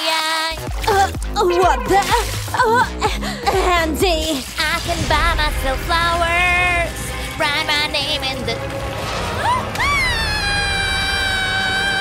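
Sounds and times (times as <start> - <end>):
woman screaming: 9.4 - 12.0.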